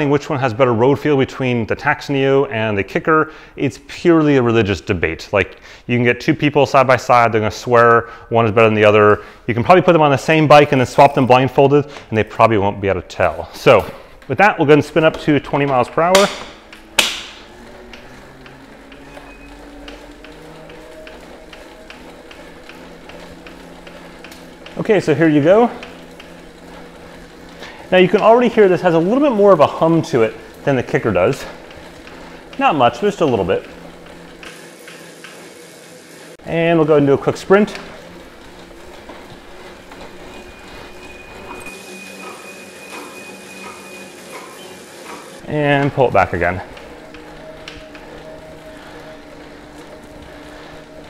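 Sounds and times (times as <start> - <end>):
bike trainer humming: 8.6 - 51.0.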